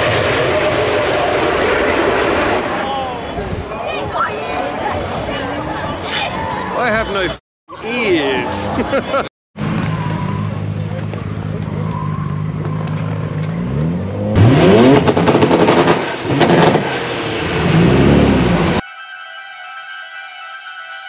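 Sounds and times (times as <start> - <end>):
car engine revving hard: 13.5 - 18.8.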